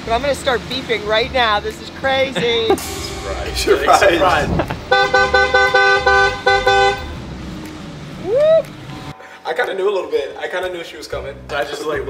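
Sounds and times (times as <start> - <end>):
car horn beeping: 2.7 - 7.3.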